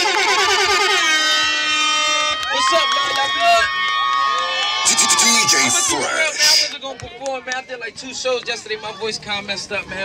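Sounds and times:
loud air horn blast: 0.0 - 2.7.

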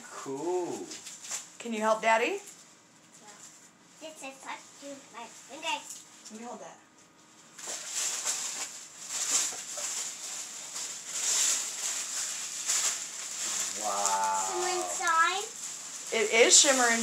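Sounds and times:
bubble wrap and tissue paper rustling: 0.2 - 6.2, 7.1 - 17.0
person's drawn-out vocal sound: 13.7 - 15.3.

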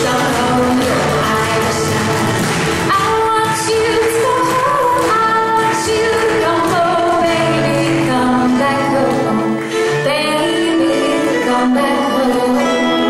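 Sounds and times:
frame drum: 0.0 - 9.3
acoustic guitar strumming: 0.0 - 13.0
fiddle: 0.0 - 13.0
woman singing: 0.0 - 13.0.

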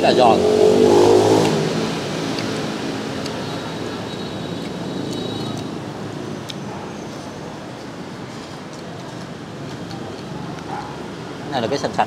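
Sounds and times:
motor vehicle passing: 0.0 - 3.4
steady traffic hum: 0.0 - 12.0.

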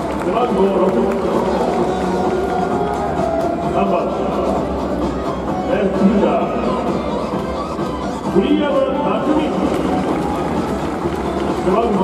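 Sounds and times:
background music: 0.0 - 12.0
reverberant announcer voice: 0.0 - 12.0.

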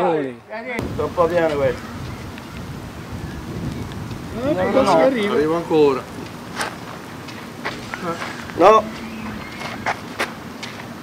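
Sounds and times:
wind on microphone: 0.8 - 6.6, 7.8 - 10.4.

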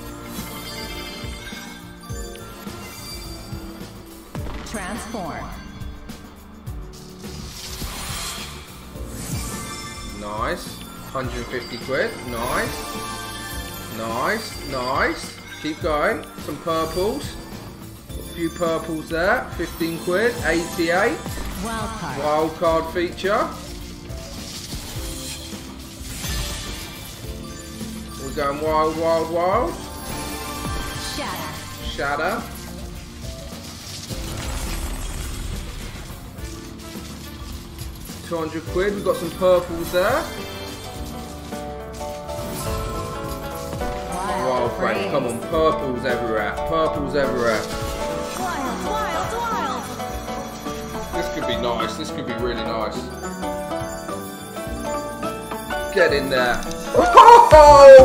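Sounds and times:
slot game music: 0.0 - 58.0.

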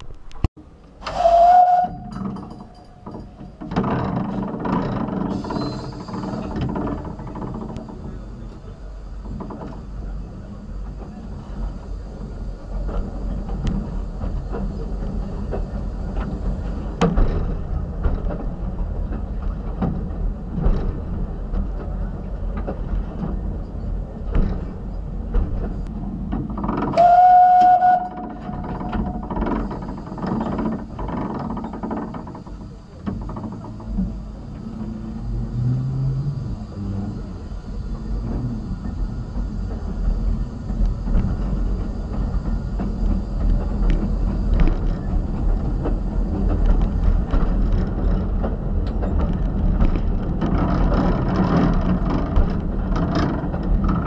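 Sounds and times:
steam locomotive rumble: 0.1 - 54.0
steam whistle blast: 1.0 - 2.2, 27.0 - 28.3.

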